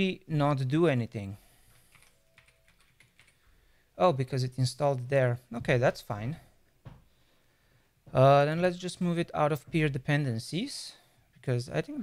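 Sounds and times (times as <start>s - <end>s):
faint keyboard typing: 1.7s - 3.5s.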